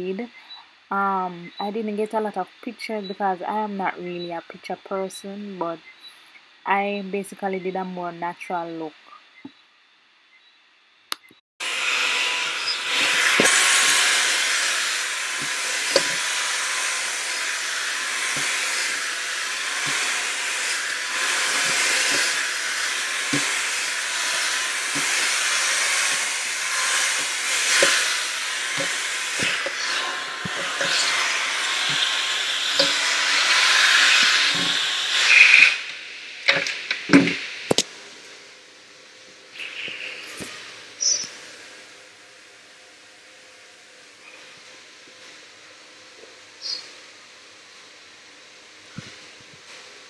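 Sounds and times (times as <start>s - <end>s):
hair dryer blowing: 11.6s - 37.8s.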